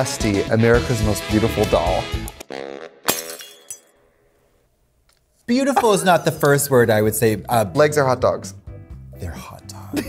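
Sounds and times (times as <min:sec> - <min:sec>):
glass smashing: 0:03.1 - 0:04.1.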